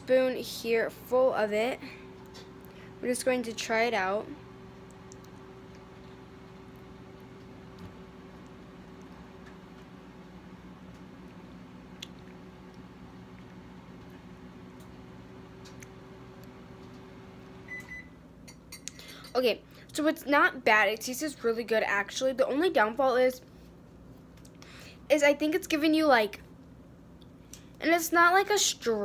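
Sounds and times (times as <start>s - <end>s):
microwave oven humming: 0.0s - 29.0s.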